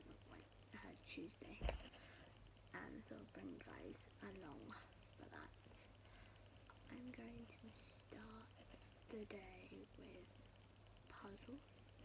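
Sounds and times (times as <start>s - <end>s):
woman speaking softly: 0.0s - 1.9s, 2.7s - 6.0s, 6.8s - 11.8s
low electrical hum: 0.0s - 12.0s.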